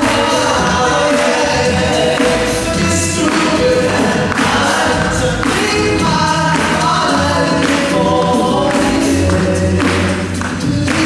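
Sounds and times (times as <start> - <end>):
male a cappella group singing: 0.0 - 11.0
sharp beat: 0.0 - 11.0.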